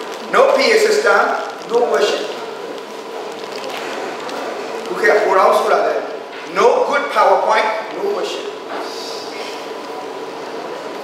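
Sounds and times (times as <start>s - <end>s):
steady hiss: 0.0s - 10.9s.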